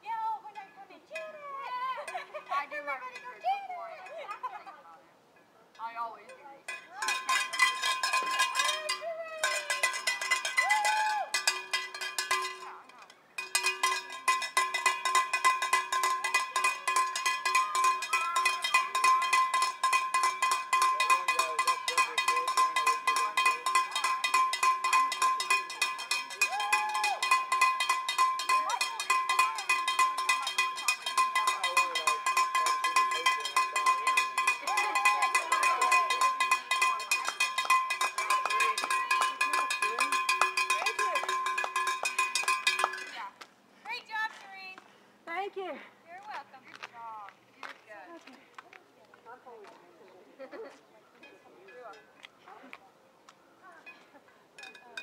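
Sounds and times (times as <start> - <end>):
handheld cowbell clanging: 6.3 - 43.3, 54.6 - 55.0.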